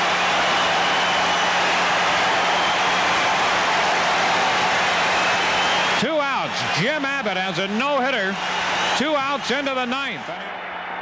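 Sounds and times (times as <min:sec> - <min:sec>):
stadium crowd cheering: 0:00.0 - 0:11.0.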